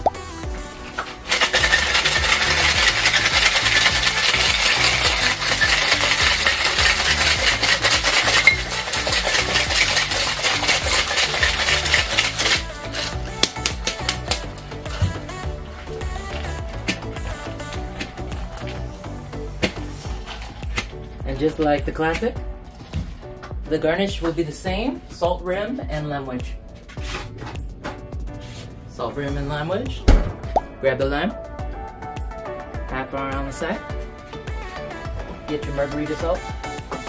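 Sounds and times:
ice rattling in cocktail shaker: 0.9 - 15.0, 20.2 - 20.8.

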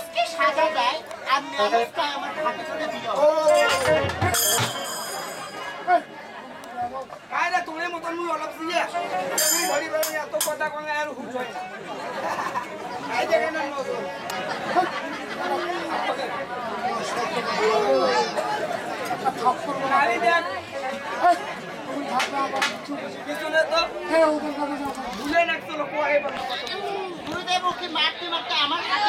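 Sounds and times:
crowd chatter: 0.0 - 29.0
men talking: 0.3 - 18.4, 19.0 - 29.0.

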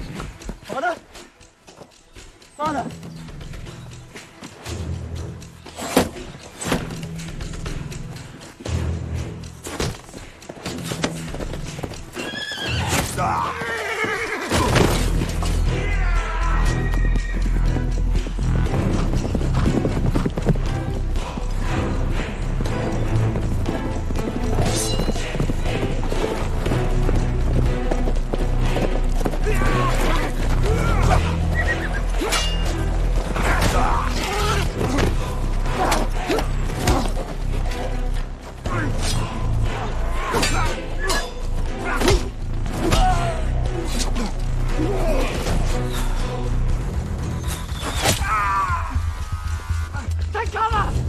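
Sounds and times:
tense film score: 0.0 - 51.0
horse hooves galloping: 6.4 - 15.6, 16.3 - 38.7.

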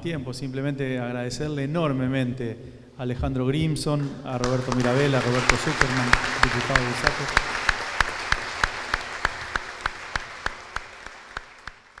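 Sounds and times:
audience applause: 4.4 - 12.0
nearby hands clapping steadily: 4.4 - 12.0.

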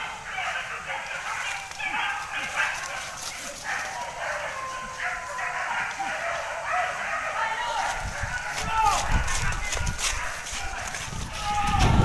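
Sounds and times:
dogs barking: 0.0 - 11.4.

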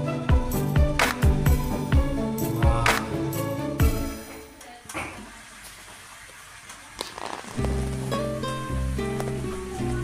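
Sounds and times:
steady hiss: 5.2 - 10.0.

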